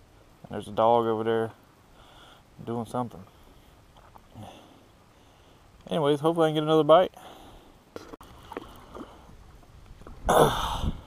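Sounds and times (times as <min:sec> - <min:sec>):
faint wind: 0:00.0 - 0:11.0
water around a boat: 0:00.0 - 0:11.0.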